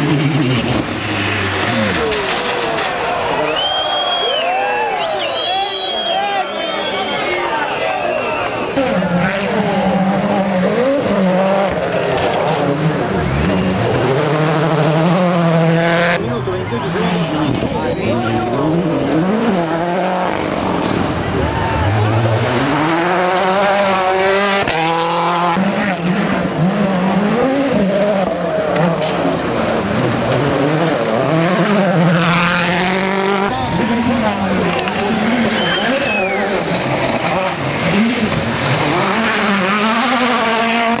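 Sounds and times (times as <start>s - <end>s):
rally car engines revving: 0.0s - 41.0s.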